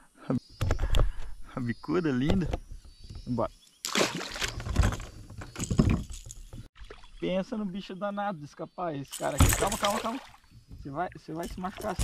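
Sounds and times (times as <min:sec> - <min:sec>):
water sloshing around a kayak: 0:03.9 - 0:07.2, 0:09.2 - 0:12.0.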